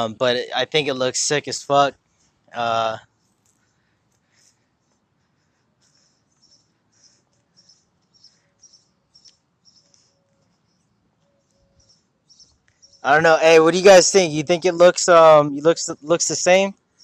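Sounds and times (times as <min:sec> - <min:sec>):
small bird chirping: 0:03.0 - 0:13.2.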